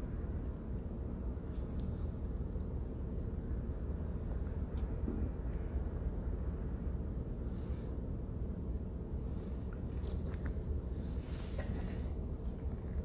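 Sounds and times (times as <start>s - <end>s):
car engine idling in cabin: 0.0s - 13.0s.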